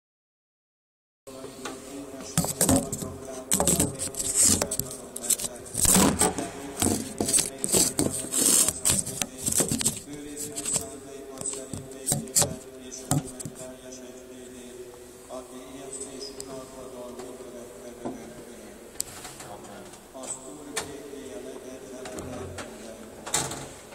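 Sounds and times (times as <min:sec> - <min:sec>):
microphone rubbing against clothing: 0:01.5 - 0:13.8.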